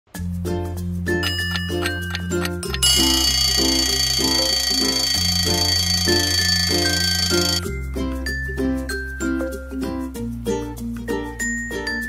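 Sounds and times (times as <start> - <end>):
bell alarm clock ringing: 1.2 - 7.6
background music with bass line: 7.6 - 12.0.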